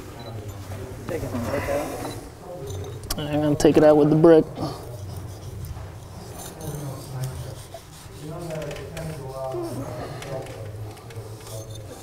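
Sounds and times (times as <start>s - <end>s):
low murmured voices: 0.0s - 12.0s.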